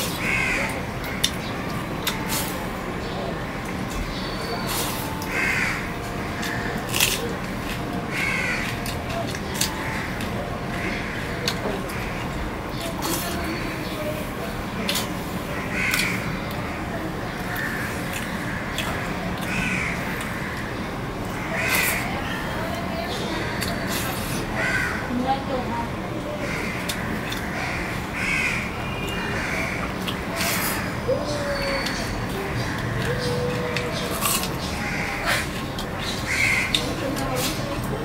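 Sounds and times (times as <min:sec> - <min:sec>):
crow cawing: 0:00.2 - 0:00.7, 0:05.3 - 0:06.8, 0:08.1 - 0:08.8, 0:15.6 - 0:16.3, 0:19.5 - 0:20.6, 0:21.4 - 0:22.1, 0:24.6 - 0:25.1, 0:26.4 - 0:29.9, 0:34.7 - 0:35.4, 0:36.3 - 0:36.8.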